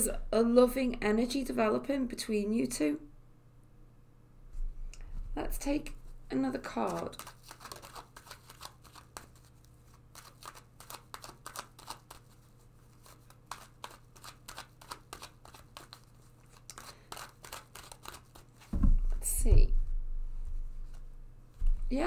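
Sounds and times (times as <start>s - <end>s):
low steady hum: 0.0s - 7.3s, 18.6s - 22.0s
cards shuffling and flicking: 6.7s - 18.7s.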